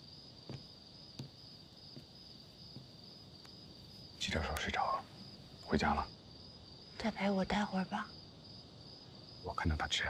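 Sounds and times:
cricket trill: 0:00.0 - 0:10.0.

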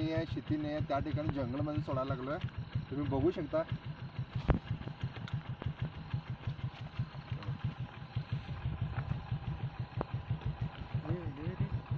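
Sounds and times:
engine idling with low throb: 0:00.0 - 0:11.9.

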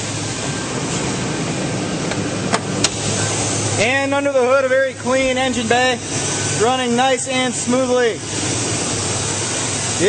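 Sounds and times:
truck engine idling: 0:00.0 - 0:10.0.

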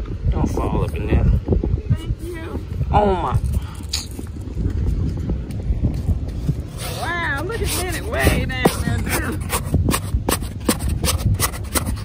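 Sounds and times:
low rumble: 0:01.1 - 0:09.9
shovel scraping sand: 0:06.5 - 0:12.0.

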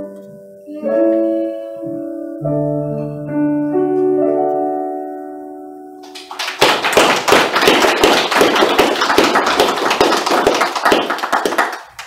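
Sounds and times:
small audience applauding: 0:06.0 - 0:12.0.

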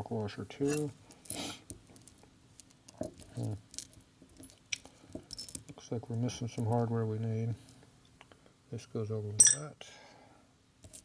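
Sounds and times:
metal bolts and washers clinking: 0:00.6 - 0:06.8, 0:09.4 - 0:09.7.

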